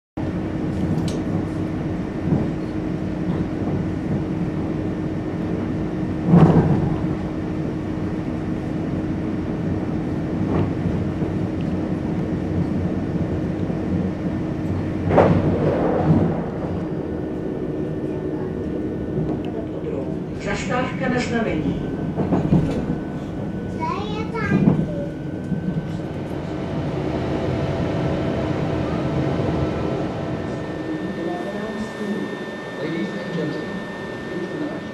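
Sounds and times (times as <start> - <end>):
train carriage rumble and hum: 0.2 - 34.9.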